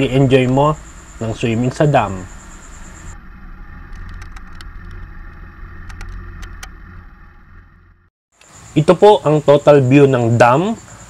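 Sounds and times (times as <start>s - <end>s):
gravel clicks and rattles: 0.0s - 7.8s
motorcycle engine rumble: 0.0s - 8.1s.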